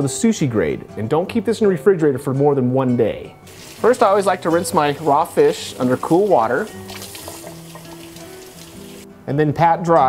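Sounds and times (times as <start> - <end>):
background music with held notes: 0.0 - 10.0
faucet water hissing: 3.5 - 9.1.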